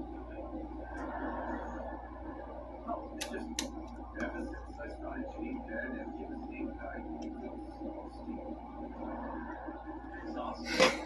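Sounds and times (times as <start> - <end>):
faint voices murmuring: 0.0 - 11.0.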